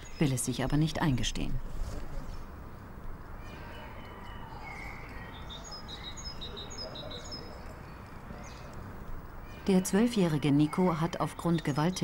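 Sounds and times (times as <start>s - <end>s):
low background noise: 0.0s - 12.0s
small bird chirping: 3.4s - 8.8s.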